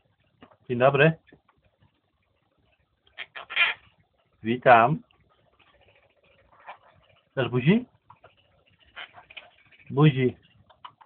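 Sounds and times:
parrot call: 3.2 - 3.9, 8.8 - 9.9.

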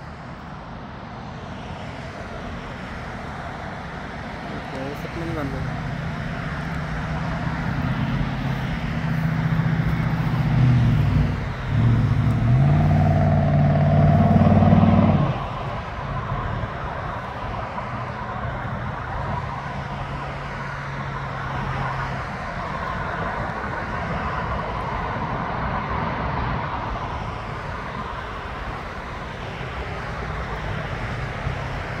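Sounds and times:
road noise hiss: 0.0 - 32.0.

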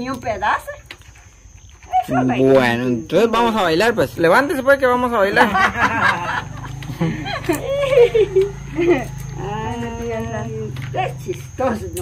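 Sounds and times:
people laughing and exclaiming: 5.2 - 9.1.

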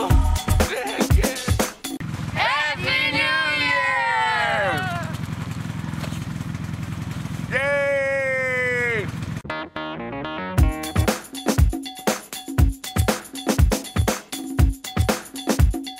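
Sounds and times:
voices shouting together: 2.4 - 5.2, 7.5 - 9.2.

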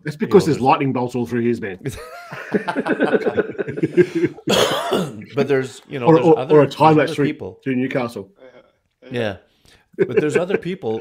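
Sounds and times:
men laughing: 1.9 - 7.2, 9.9 - 11.0
breathy cough-like burst: 4.0 - 5.3.

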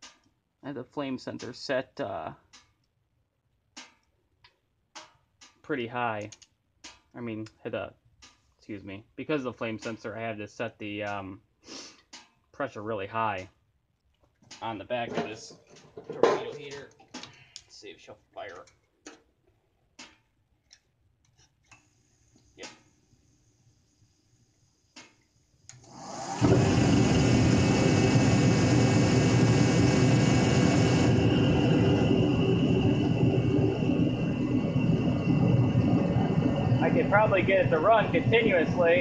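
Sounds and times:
heater motor and fan running: 25.8 - 39.0
burner firing: 25.9 - 39.0.

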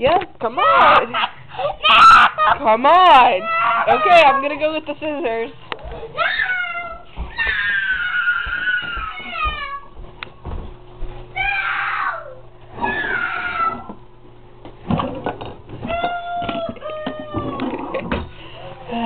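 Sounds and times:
boy crying and wailing: 0.6 - 2.6, 3.4 - 4.4, 6.1 - 9.9.

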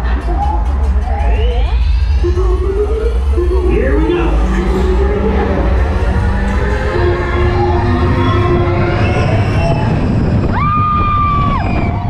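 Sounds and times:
music playing: 0.0 - 12.0
roller coaster train rumbling: 0.0 - 12.0
riders' voices: 3.4 - 7.5.

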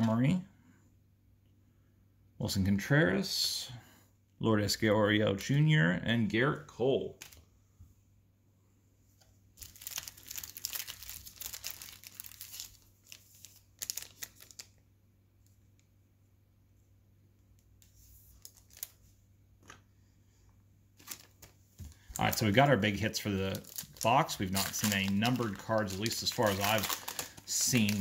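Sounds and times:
foil wrapper crinkling and tearing: 9.6 - 14.7, 18.4 - 19.0, 21.0 - 28.0.

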